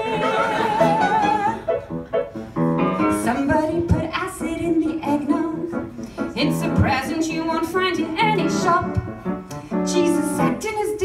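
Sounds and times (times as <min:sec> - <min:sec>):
woman singing into microphone: 0:00.0 - 0:01.6, 0:03.1 - 0:09.0, 0:09.9 - 0:11.0.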